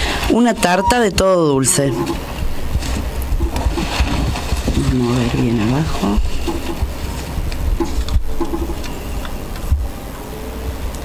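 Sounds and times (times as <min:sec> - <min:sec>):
paper tickets rustling: 0:00.0 - 0:09.6
steady low hum: 0:00.0 - 0:11.0.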